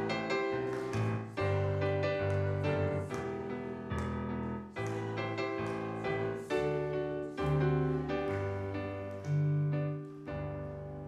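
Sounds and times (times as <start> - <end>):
piano hymn accompaniment: 0.0 - 11.0.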